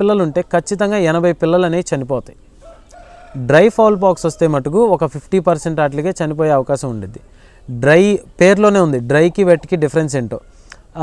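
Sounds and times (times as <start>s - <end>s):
chicken calling faintly: 2.5s - 5.0s, 9.4s - 11.0s.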